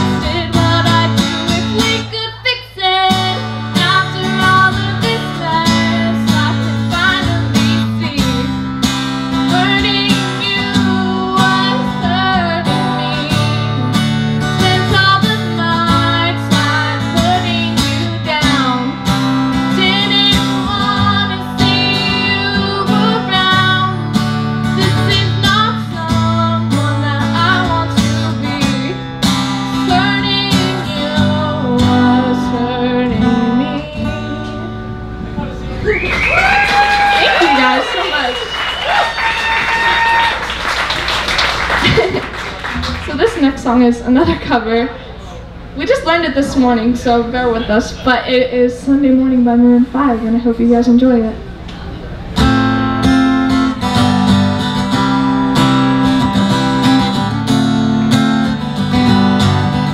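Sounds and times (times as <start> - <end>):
woman singing: 0.0 - 8.6, 9.4 - 29.0, 29.7 - 34.9
acoustic guitar strumming: 0.0 - 35.9, 41.6 - 49.9, 52.0 - 59.9.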